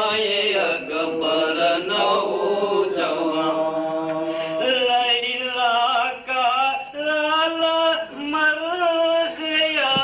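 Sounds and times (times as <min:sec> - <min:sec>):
men chanting a lament: 0:00.0 - 0:10.0.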